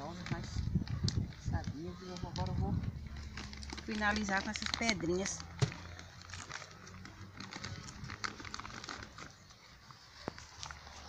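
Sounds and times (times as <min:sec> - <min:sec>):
plastic bag crinkling: 0:00.0 - 0:09.5
pebbles clicking: 0:00.1 - 0:09.4.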